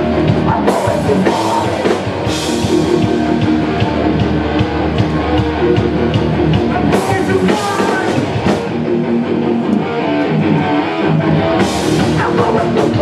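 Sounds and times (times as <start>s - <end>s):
hardcore band playing loud: 0.0s - 13.0s.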